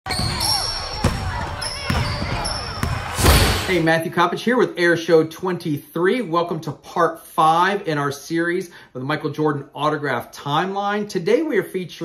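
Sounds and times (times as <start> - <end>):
basketball bouncing on hard court: 0.1 - 3.7
shoes squeaking on court: 0.1 - 3.7.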